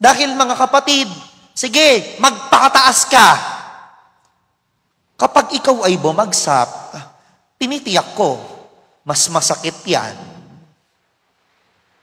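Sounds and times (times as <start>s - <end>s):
man's amplified voice: 0.0s - 4.2s, 5.2s - 10.8s.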